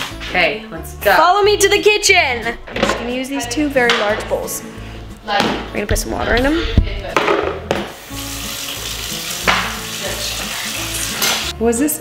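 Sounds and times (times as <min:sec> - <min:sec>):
faucet water pouring into bowl: 0:08.0 - 0:11.5.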